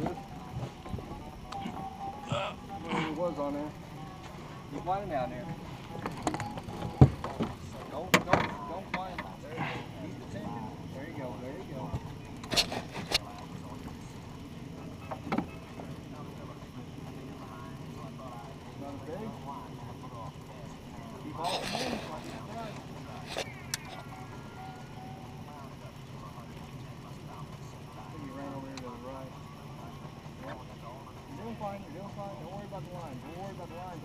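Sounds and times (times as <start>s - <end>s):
faint indistinct voices: 0.0s - 34.0s
steady low hum: 0.0s - 34.0s.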